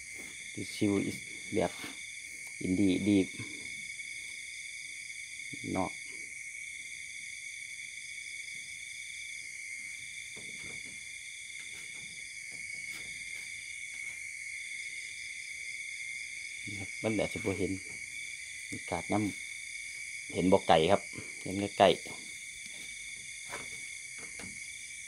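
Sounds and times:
crickets and insects chirping: 0.0 - 25.0.

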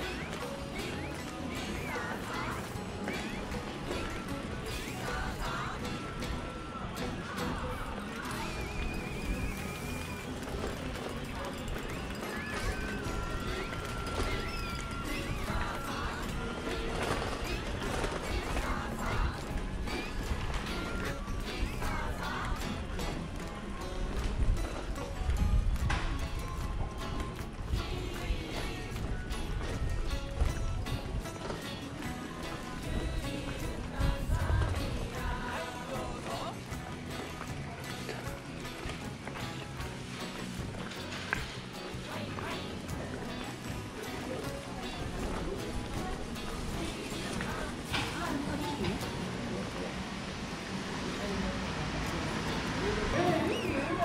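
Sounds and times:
background music: 0.0 - 54.0
indistinct voices of shoppers: 0.0 - 54.0.

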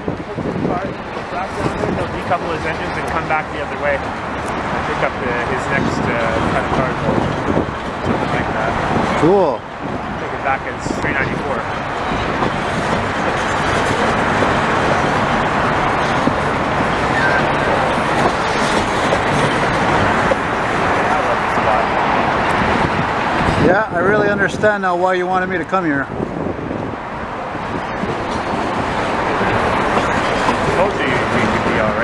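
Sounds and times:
freight train rolling past: 0.0 - 25.1, 26.0 - 32.0
road traffic: 0.0 - 32.0.

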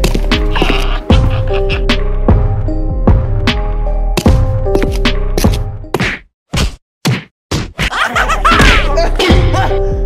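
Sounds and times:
background music with a beat: 0.0 - 6.2
sharp whack hits: 6.0 - 7.9.

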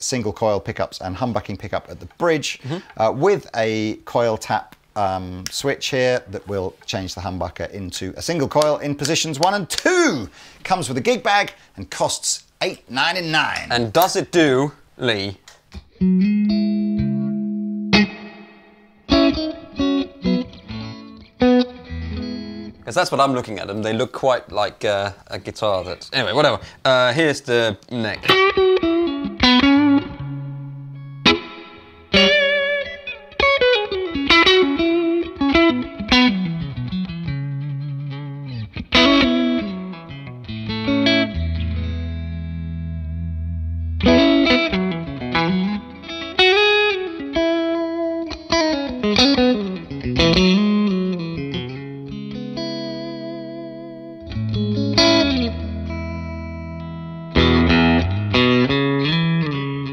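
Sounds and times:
electric guitar through amplifier: 15.8 - 22.9, 28.2 - 59.9.

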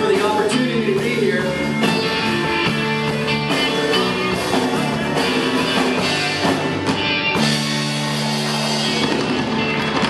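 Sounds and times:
drums and cymbals wash: 0.0 - 10.0
live rock band playing: 0.0 - 10.0.

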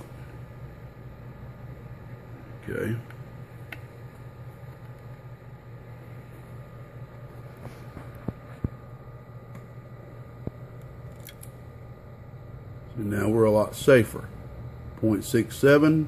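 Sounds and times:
power supply and fan hum: 0.0 - 16.0.

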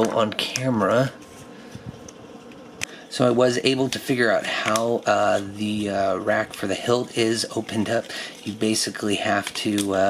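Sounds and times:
room hum with faint hiss: 0.0 - 10.0.

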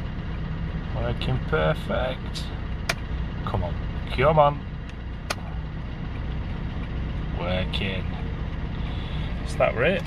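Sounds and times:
van engine idling: 0.0 - 10.0.

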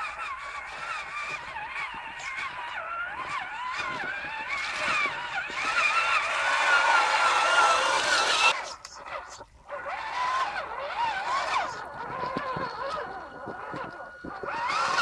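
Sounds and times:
toy truck electric motor whining: 0.0 - 15.0.

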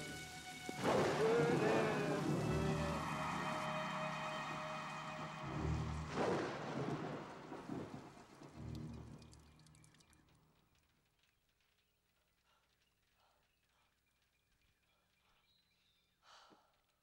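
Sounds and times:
thunder rumbling: 0.0 - 4.2, 5.2 - 9.5
rain falling: 0.0 - 11.7.

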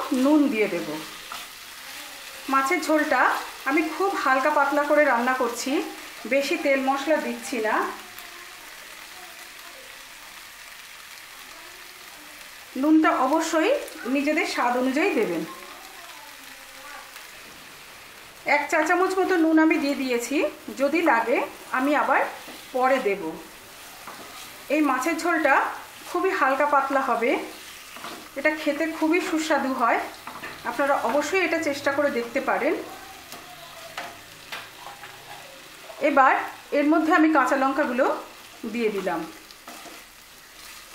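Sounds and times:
spice paste sizzling in oil: 0.0 - 40.9.

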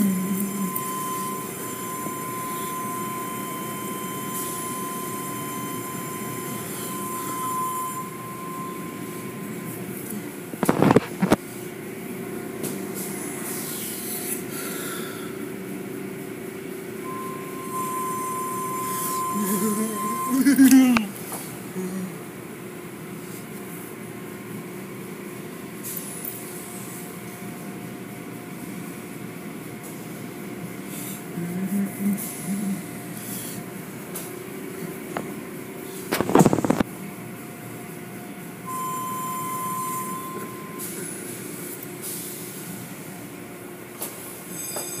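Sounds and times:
high steady squeal: 0.0 - 9.8, 17.0 - 20.4
thin high tone: 0.0 - 10.0, 17.0 - 21.2, 38.7 - 41.0
car wash mechanical hum: 0.0 - 45.0.

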